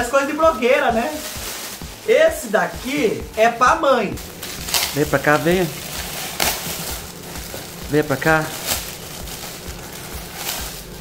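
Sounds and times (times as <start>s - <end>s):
foil gift wrap crinkling and tearing: 0.0s - 11.0s.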